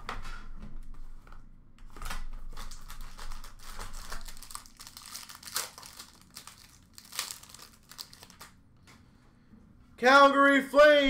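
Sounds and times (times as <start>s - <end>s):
plastic wrapping crinkling and tearing: 1.9s - 8.6s.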